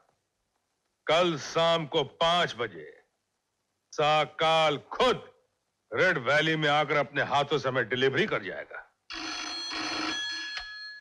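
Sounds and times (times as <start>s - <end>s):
telephone bell ringing: 9.1s - 11.0s.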